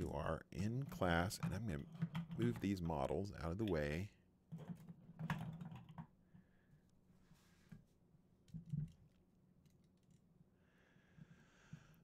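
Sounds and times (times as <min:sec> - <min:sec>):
objects clicking and knocking on desk: 0:04.5 - 0:06.1.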